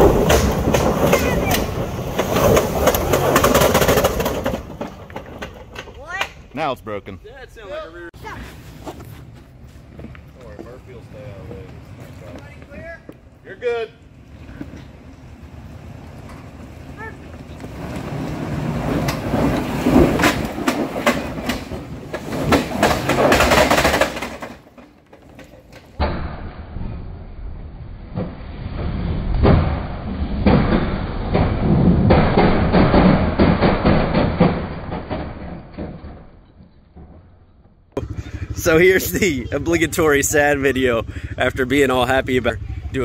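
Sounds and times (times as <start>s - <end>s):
tires spinning on dirt: 0.0s - 5.8s, 14.1s - 24.7s, 26.3s - 37.2s, 38.0s - 43.0s
rocks clattering against truck: 0.0s - 6.4s, 17.4s - 26.0s, 29.4s - 37.7s
engine revving under heavy load: 38.0s - 43.0s.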